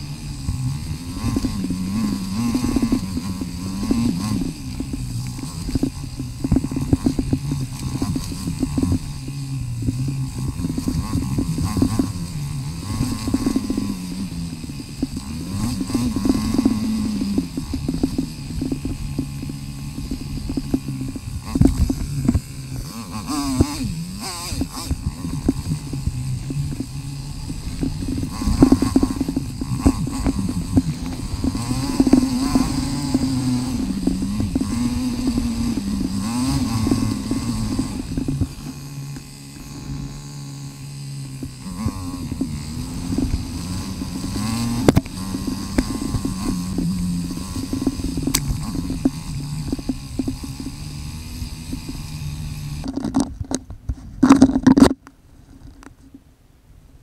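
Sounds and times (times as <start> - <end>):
sped-up motorcycle engine revving: 0.0 - 53.3.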